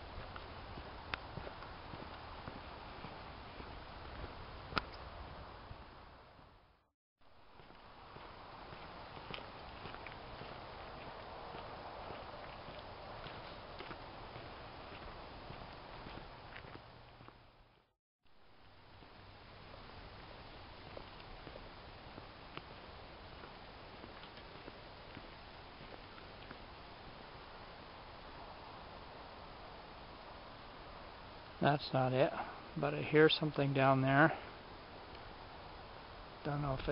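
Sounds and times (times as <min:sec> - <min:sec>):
footsteps on gravel: 0:00.1 - 0:04.4, 0:07.5 - 0:17.8, 0:20.7 - 0:26.6
steady hiss: 0:18.4 - 0:36.9.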